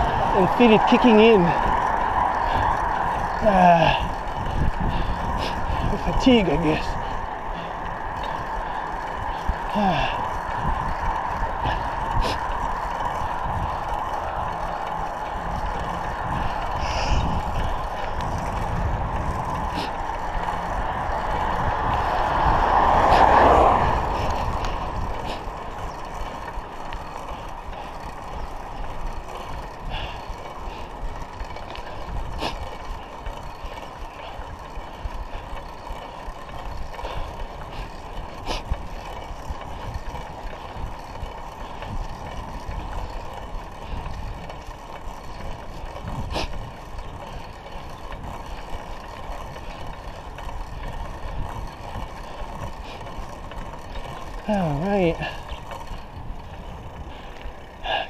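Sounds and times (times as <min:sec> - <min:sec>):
bike clicks: 0:00.0 - 0:58.0
wind and bicycle tyre rush: 0:00.0 - 0:58.0
car passing loudly: 0:19.6 - 0:25.5.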